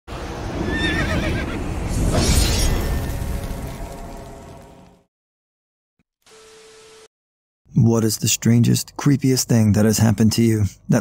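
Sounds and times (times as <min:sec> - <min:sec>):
horse whinnying: 0:00.6 - 0:01.6.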